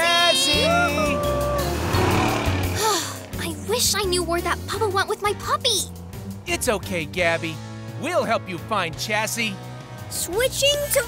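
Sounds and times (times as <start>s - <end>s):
background music: 0.0s - 11.0s
cartoon truck engine and tyres: 0.4s - 7.2s.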